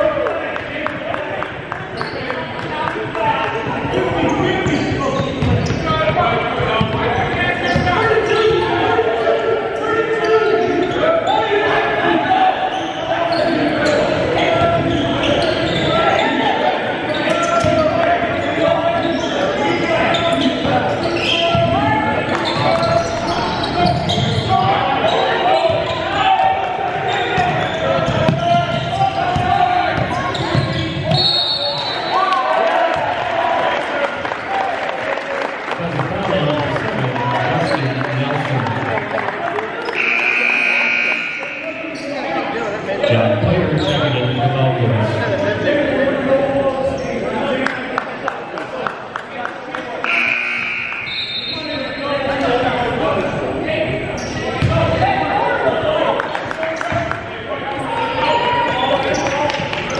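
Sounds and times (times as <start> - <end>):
players and spectators voices: 0.0 - 59.9.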